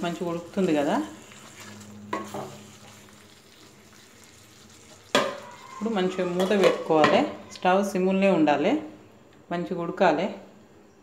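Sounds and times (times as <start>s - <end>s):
curry sizzling in a pan: 0.0s - 7.2s.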